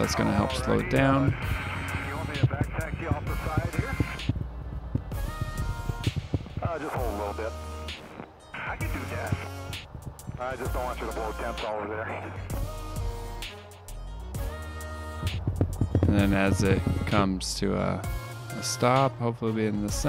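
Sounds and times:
music with a beat: 0:00.0 - 0:20.0.

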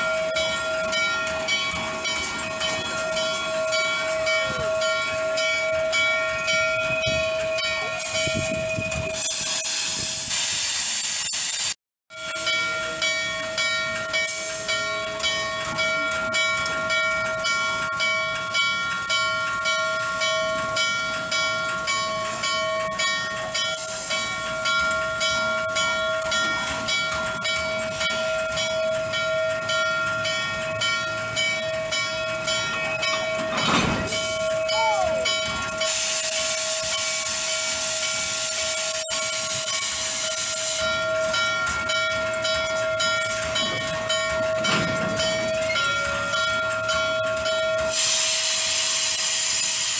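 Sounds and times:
steam locomotive air pumps beating: 0:00.0 - 0:11.8, 0:19.7 - 0:49.9
rush of escaping steam: 0:08.0 - 0:11.8, 0:23.6 - 0:25.4, 0:33.2 - 0:41.4, 0:47.8 - 0:49.9.

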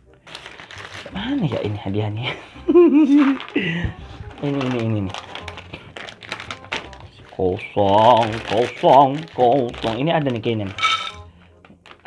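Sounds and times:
plastic snack bag crinkling: 0:00.0 - 0:02.2, 0:03.0 - 0:12.0.

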